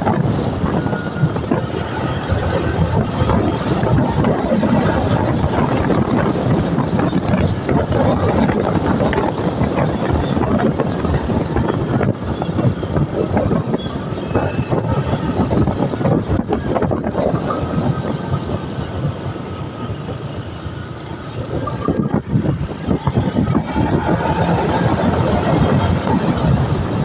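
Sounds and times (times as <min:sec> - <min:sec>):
motorcycle engine rumble: 0:00.0 - 0:27.0
wind noise on microphone: 0:00.0 - 0:27.0.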